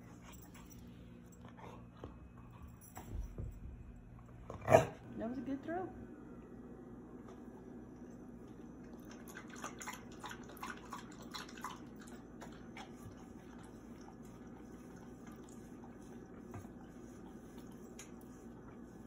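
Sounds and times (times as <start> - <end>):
dog lapping at metal bowl: 8.9 - 18.5.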